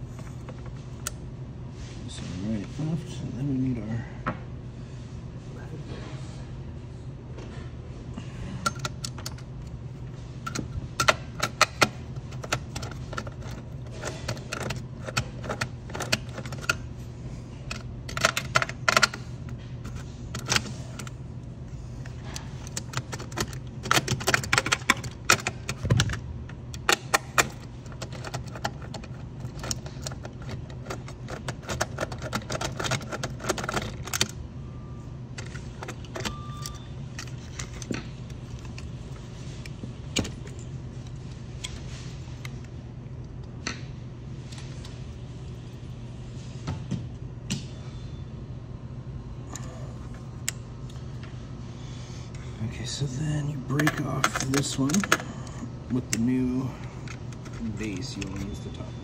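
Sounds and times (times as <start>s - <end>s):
steady low hum: 0.0s - 59.0s
metal tools clicking and clinking: 53.8s - 55.2s.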